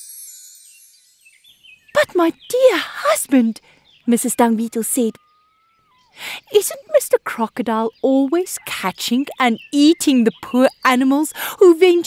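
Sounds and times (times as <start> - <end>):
high chime tones: 0.0 - 1.4.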